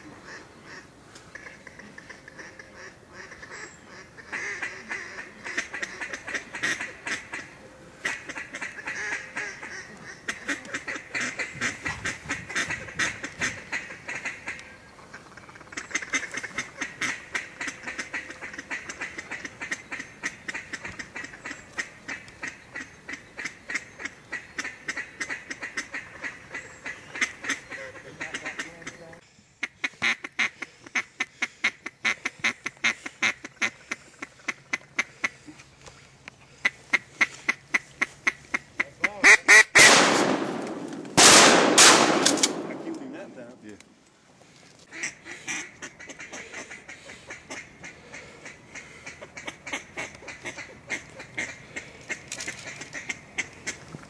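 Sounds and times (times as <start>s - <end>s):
ducks quacking: 0.0s - 40.6s, 41.2s - 43.8s, 44.8s - 54.0s.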